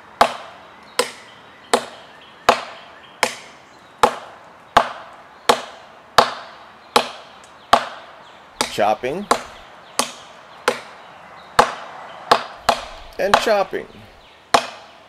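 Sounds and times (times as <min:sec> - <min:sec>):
knife chopping into wood: 0:00.2 - 0:10.9, 0:11.6 - 0:15.0.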